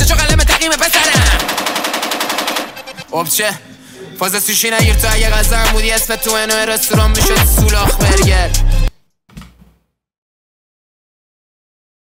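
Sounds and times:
rapping over a hip-hop beat: 0.0 - 1.5, 3.0 - 8.9.

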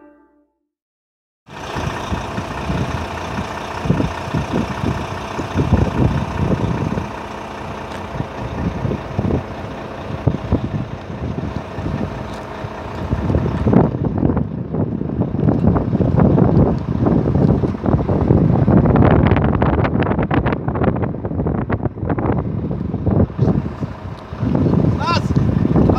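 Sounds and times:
vehicle engine idling: 1.5 - 25.9
wind buffeting microphone: 2.1 - 7.1, 8.0 - 25.9.

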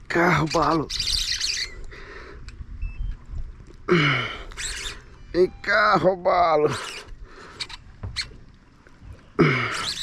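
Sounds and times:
birds chirping: 0.1 - 10.0.

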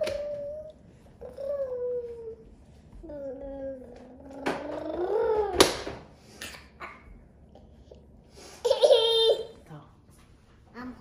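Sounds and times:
toddler whining: 0.0 - 5.8.

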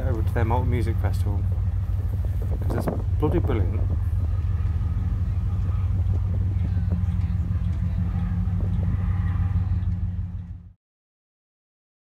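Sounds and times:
faint voices: 0.0 - 10.8
ferry engines droning: 0.0 - 10.8.

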